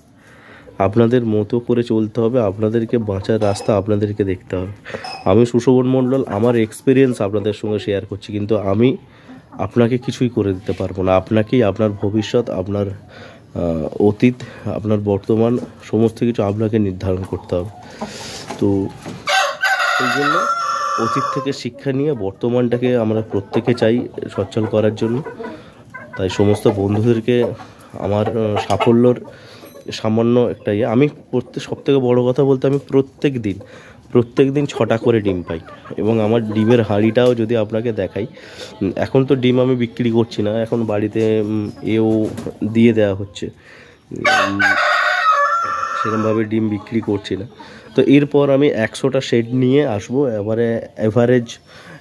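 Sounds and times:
rooster crowing: 0:19.3 - 0:21.5, 0:44.2 - 0:46.3.

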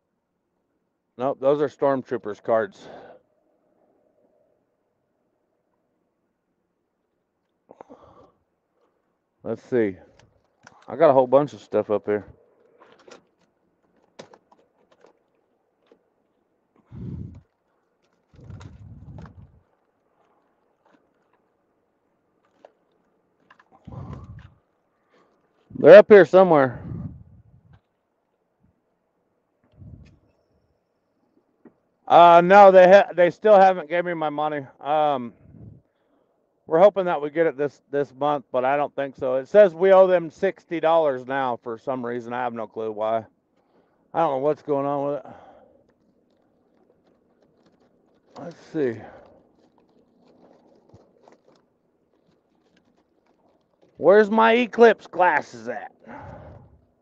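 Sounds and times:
rummaging in compartment: 0:18.0 - 0:19.6, 0:45.8 - 0:54.0.

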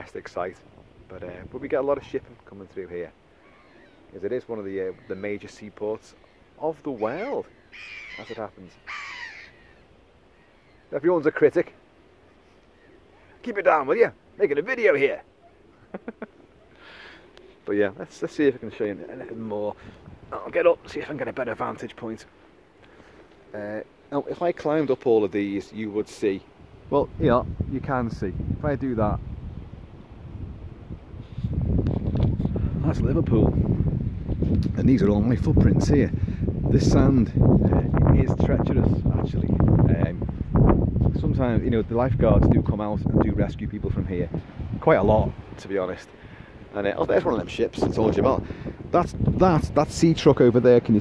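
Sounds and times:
wind rumbling on microphone: 0:00.0 - 0:06.6, 0:19.0 - 0:21.4, 0:26.3 - 0:51.0
crow cawing: 0:03.3 - 0:04.1, 0:07.0 - 0:10.8.

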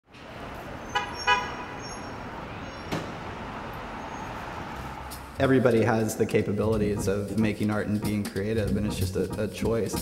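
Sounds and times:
street traffic: 0:00.1 - 0:10.0
vehicle horn honks: 0:00.9 - 0:01.8.

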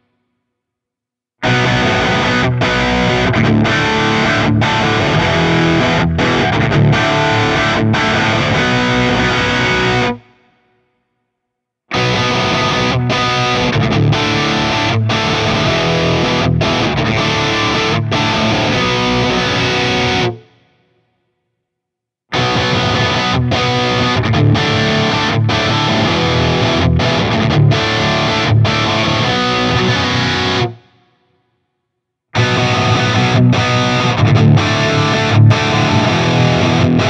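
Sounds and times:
distorted electric guitar riff: 0:01.4 - 0:10.3, 0:11.9 - 0:20.5, 0:22.3 - 0:30.9, 0:32.4 - 0:37.0.

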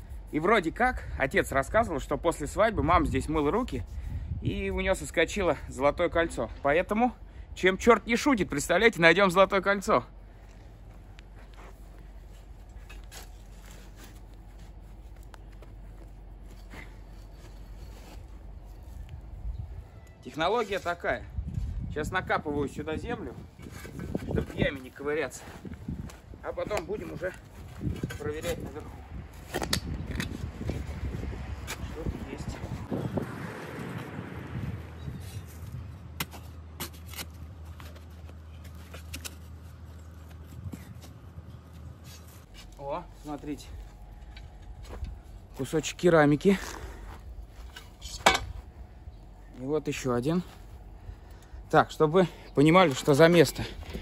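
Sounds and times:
low steady hum: 0:00.0 - 0:31.4, 0:35.0 - 0:54.0
low steady rumble: 0:34.0 - 0:54.0.

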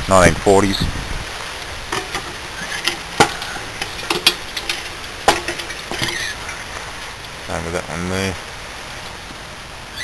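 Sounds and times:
steady background hiss: 0:00.0 - 0:10.0
sharp clicks and knocks: 0:01.9 - 0:06.3.

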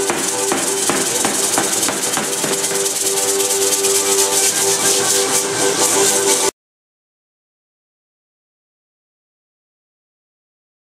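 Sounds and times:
dancers' rattles shaking: 0:00.0 - 0:05.3
melody over regular beat: 0:00.0 - 0:06.5.

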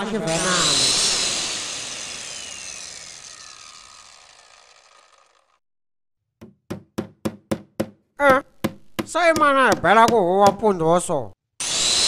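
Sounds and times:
power tool whine: 0:00.0 - 0:05.6, 0:11.6 - 0:12.0.

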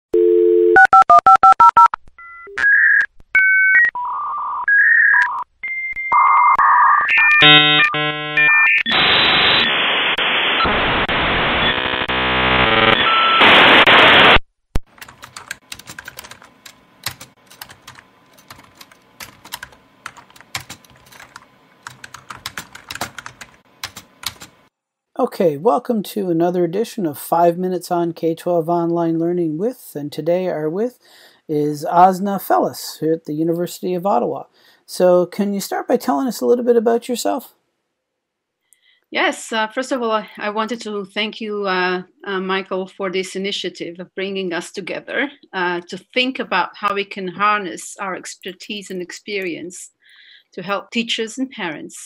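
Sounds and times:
dial tone: 0:00.1 - 0:09.0, 0:11.6 - 0:13.4
touch-tone dialing: 0:00.2 - 0:03.9
modem hissing and warbling noise: 0:08.0 - 0:14.4
keyboard typing clicks: 0:14.8 - 0:24.6.

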